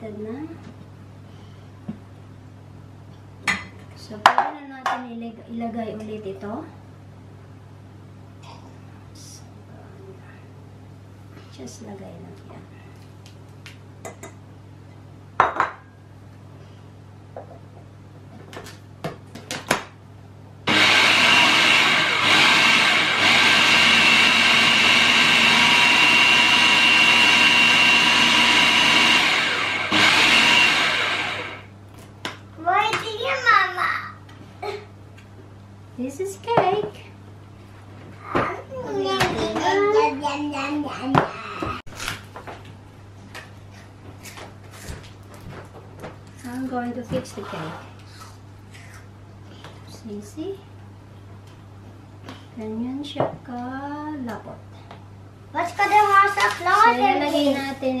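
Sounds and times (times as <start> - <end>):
food processor motor running: 20.7 - 31.7.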